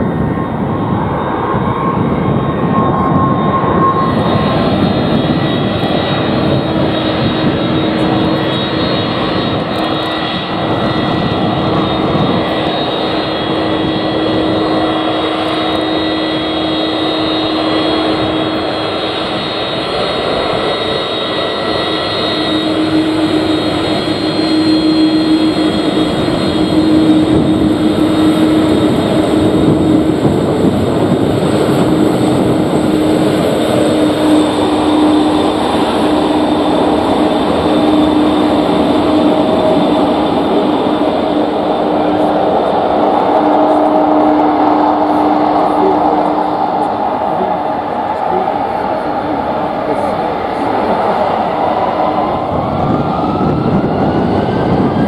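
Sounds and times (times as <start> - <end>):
jet engines running: 0.0 - 55.0.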